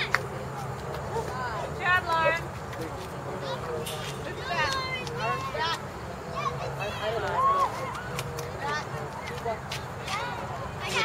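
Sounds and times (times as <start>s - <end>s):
girls shouting: 4.4s - 8.8s.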